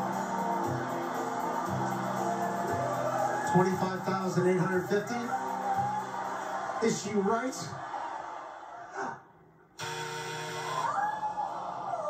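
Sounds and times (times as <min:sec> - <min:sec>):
game show losing buzzer: 0:09.8 - 0:11.0.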